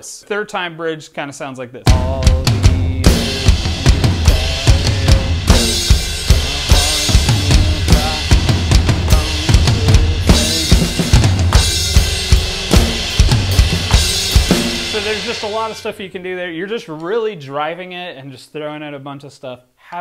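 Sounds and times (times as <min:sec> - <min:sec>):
snare drum: 0:01.9 - 0:15.8
cymbal crashes: 0:10.3 - 0:15.8.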